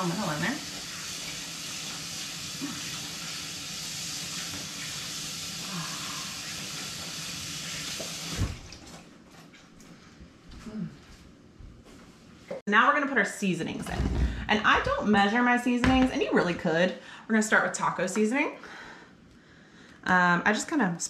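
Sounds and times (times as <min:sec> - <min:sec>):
faucet running: 0:00.0 - 0:09.0.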